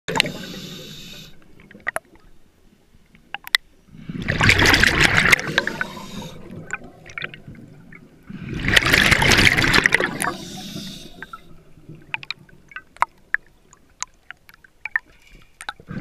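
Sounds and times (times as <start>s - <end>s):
underwater regulator bubbles: 4.0s - 13.5s.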